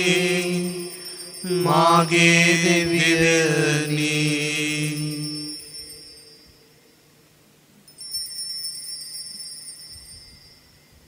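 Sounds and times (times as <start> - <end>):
small bells ringing: 0.0 - 7.1, 7.8 - 11.0.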